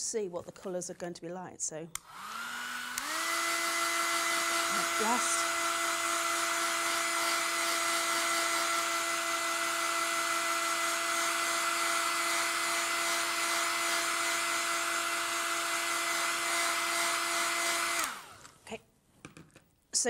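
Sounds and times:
hair dryer blowing: 2.0 - 18.6.

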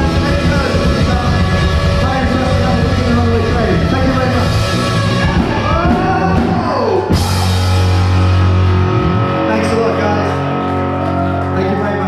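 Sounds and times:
held low chord: 0.0 - 12.0
loud rock music: 0.0 - 12.0.

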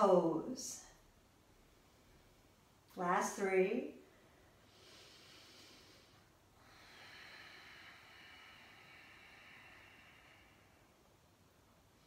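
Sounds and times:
woman breathing softly: 4.1 - 12.0.

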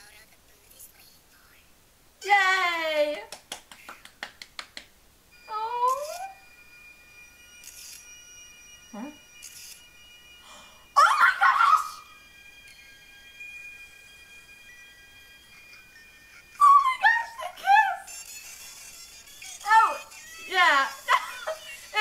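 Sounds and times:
hand claps: 3.1 - 4.9.

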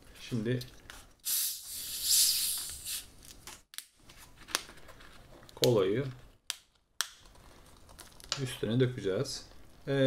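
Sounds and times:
soda bottle hissing: 1.2 - 3.1.

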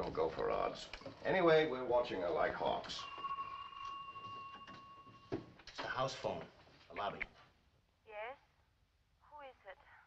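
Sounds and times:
telephone ringing: 2.6 - 5.6.

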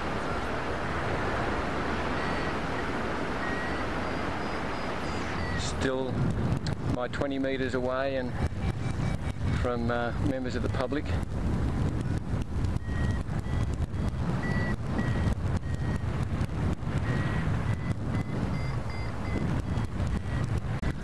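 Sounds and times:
wind buffeting microphone: 0.0 - 21.0
faint high variometer beeping: 2.0 - 6.1, 7.1 - 21.0.

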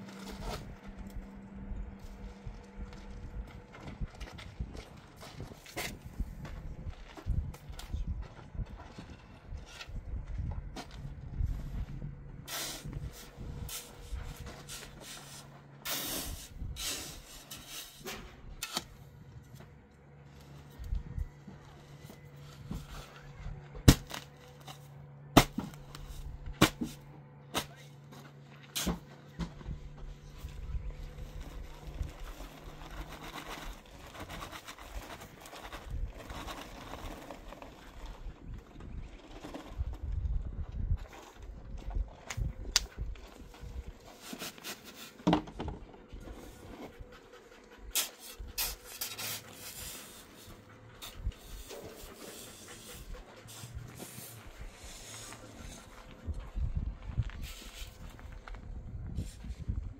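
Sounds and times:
shovel chopping into paper bag: 23.8 - 24.4, 25.4 - 27.0
shovel scraping and clinking: 48.0 - 55.8.

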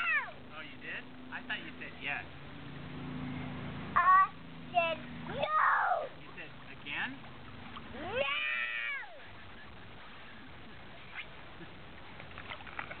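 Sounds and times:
child's high-pitched cry: 8.1 - 9.2.

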